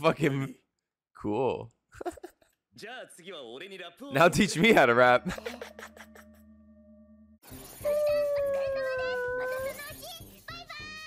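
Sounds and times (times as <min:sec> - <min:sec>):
cartoon character calling out: 0:07.9 - 0:09.8.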